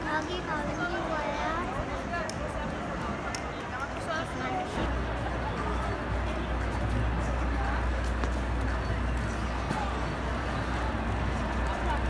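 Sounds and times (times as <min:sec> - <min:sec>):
voices of passers-by: 0:00.0 - 0:12.0.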